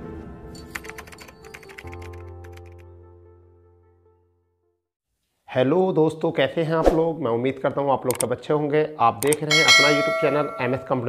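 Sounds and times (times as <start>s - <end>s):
keyboard typing clicks: 0.6s - 2.8s.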